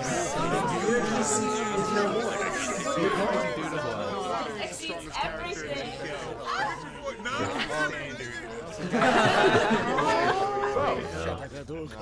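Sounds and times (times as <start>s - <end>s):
overlapping chatter of voices: 0.0s - 12.0s.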